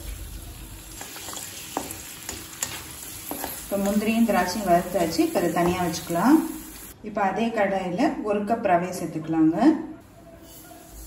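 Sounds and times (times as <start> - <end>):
nuts sizzling in hot fat: 0.0 - 7.0.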